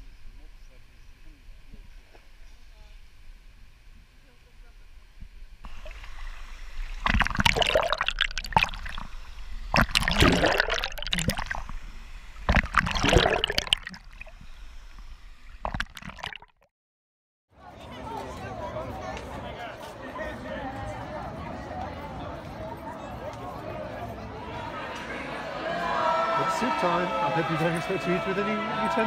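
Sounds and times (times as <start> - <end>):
short water splashes: 5.7 - 9.1, 9.7 - 11.8, 12.4 - 14.4
water sloshing and gurgling: 5.7 - 16.7.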